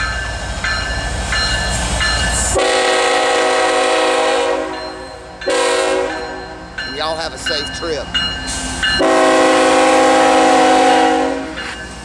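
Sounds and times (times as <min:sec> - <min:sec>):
bell ringing: 0:00.0 - 0:02.5, 0:04.7 - 0:09.2
locomotive air horn blasts: 0:02.6 - 0:04.8, 0:05.5 - 0:06.4, 0:09.0 - 0:11.6.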